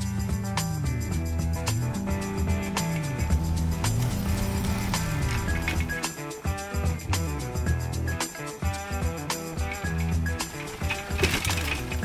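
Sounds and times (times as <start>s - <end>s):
instrumental background music: 0.0s - 12.0s
bike rattling over rock: 3.5s - 6.1s, 9.6s - 12.0s.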